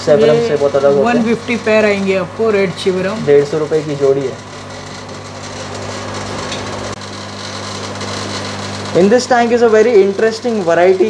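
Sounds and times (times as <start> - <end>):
aquarium air pumps humming: 0.0 - 11.0.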